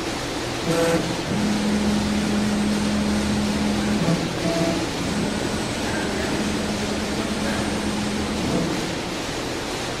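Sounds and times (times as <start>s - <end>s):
router hiss: 0.5s - 9.6s.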